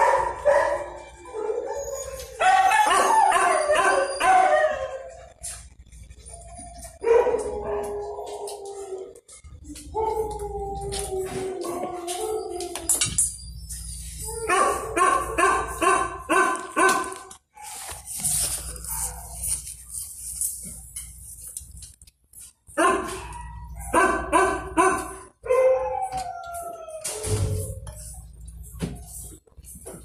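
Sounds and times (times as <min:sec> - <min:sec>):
dog barking: 0:00.0 - 0:00.9, 0:14.5 - 0:17.3, 0:22.8 - 0:23.2, 0:23.9 - 0:25.7.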